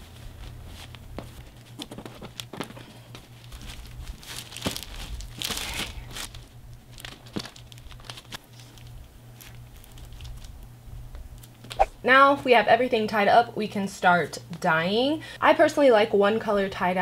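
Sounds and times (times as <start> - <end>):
plastic and fabric rustling: 0.0 - 10.7
steady low hum: 0.0 - 16.6.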